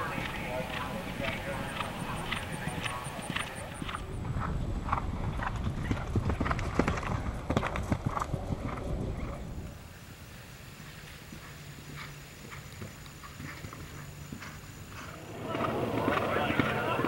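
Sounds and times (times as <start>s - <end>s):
horse galloping on turf: 0.0s - 9.8s, 10.8s - 17.0s.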